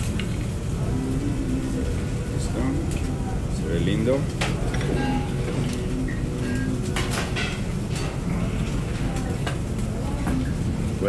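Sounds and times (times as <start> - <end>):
low kitchen rumble: 0.0 - 11.0
faint voices: 0.6 - 11.0.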